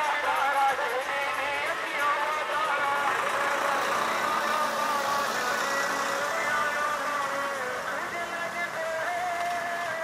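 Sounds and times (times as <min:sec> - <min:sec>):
tractor engine passing: 0:01.0 - 0:10.0.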